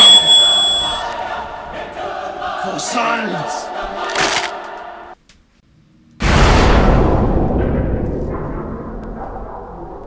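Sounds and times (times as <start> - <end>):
deep rumbling boom: 6.2 - 10.0.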